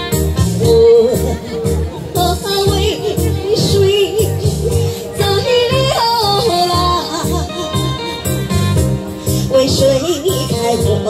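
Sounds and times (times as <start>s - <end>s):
live electronic keyboard music: 0.0s - 11.0s.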